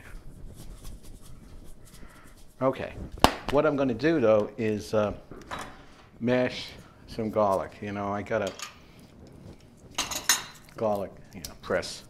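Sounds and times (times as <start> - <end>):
spice shaker scratchy ticks: 0.0 - 3.1.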